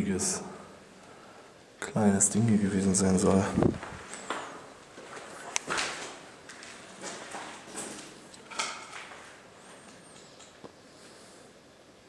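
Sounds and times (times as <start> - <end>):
footsteps on concrete: 3.7 - 8.2.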